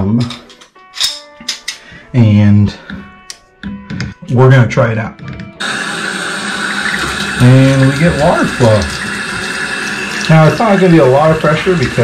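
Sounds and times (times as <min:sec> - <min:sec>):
water rushing from shower valve: 0:05.6 - 0:12.0.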